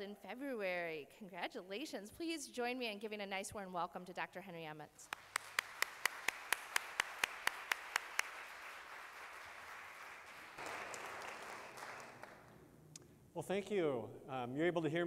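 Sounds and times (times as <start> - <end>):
hands clapping close to microphone: 5.0 - 12.6
audience applauding: 5.1 - 12.6.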